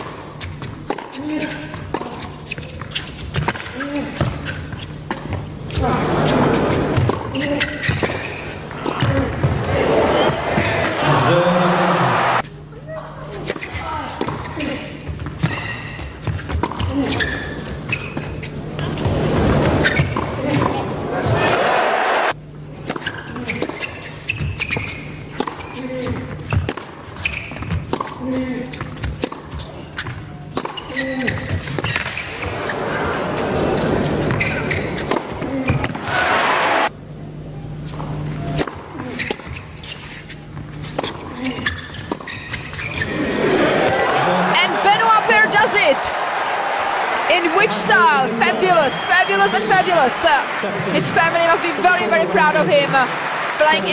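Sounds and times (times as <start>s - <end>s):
tennis ball bouncing on hard court: 0.0s - 1.2s, 13.5s - 14.5s, 15.1s - 18.3s, 24.6s - 25.7s, 26.5s - 28.2s, 28.8s - 32.6s, 40.5s - 43.0s
crowd applauding and cheering: 9.8s - 12.4s, 43.3s - 53.9s
tennis ball hit by rackets: 30.5s - 30.8s.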